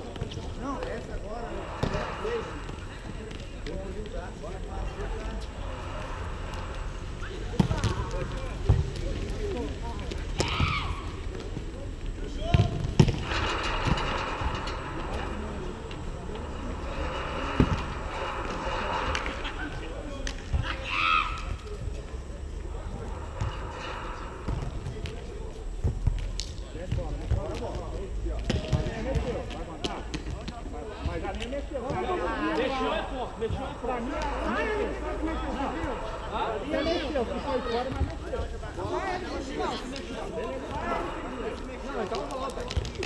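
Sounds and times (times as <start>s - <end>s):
steady low rumble: 0.4s - 10.4s, 12.9s - 20.6s, 21.6s - 27.2s
players shouting: 10.3s - 11.2s.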